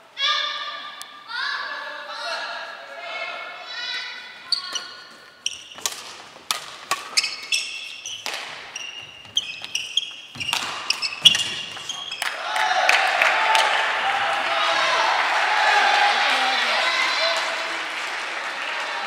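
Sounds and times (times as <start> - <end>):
shoes squeaking on wooden floor: 4.4 - 12.3
rackets hitting shuttlecock: 5.5 - 12.4
crowd shouting: 12.3 - 19.0.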